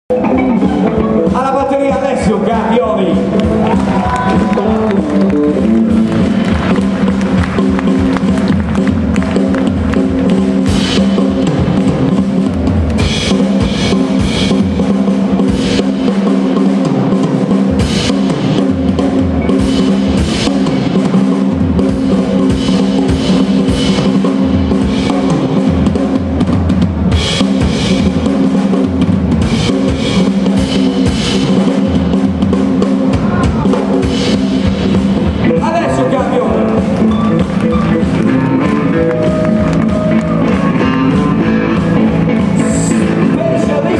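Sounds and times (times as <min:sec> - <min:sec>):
blues band playing live: 0:00.1 - 0:43.9.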